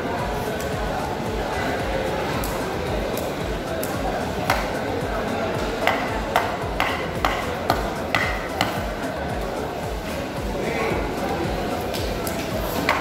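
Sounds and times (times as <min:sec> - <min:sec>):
background music: 0:00.0 - 0:13.0
knife chopping on wooden block: 0:05.8 - 0:08.8.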